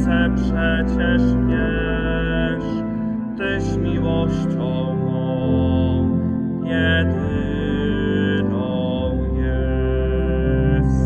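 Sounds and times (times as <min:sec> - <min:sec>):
organ-like keyboard chords: 0:00.0 - 0:11.0.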